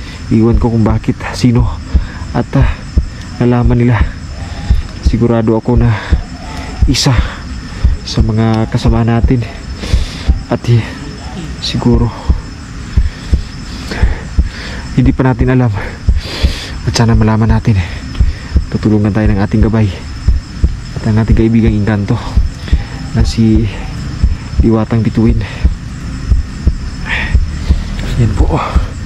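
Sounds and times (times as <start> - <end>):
rapid low thuds: 0.0 - 10.6, 11.9 - 29.0
soft low thumps: 0.4 - 10.7, 11.9 - 29.0.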